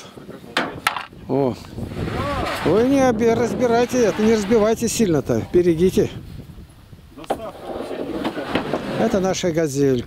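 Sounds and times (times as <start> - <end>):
roofing sheets scraping together: 1.8 - 5.0, 7.2 - 9.4.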